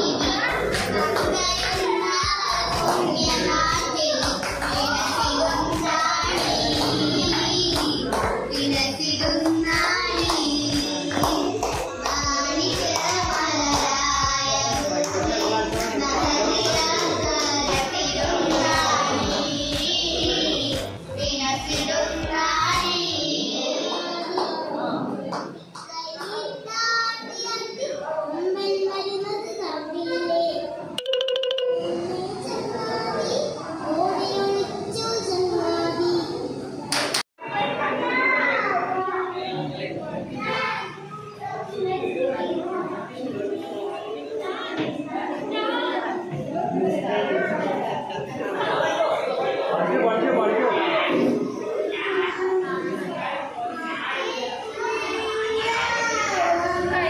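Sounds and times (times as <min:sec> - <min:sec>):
girls singing together: 0:00.0 - 0:24.7
child's voice: 0:00.0 - 0:24.8, 0:25.9 - 0:30.8, 0:31.8 - 0:36.6, 0:51.1 - 0:57.0
children chattering: 0:00.0 - 0:31.0, 0:31.8 - 0:57.0
steady beat: 0:31.0 - 0:32.1.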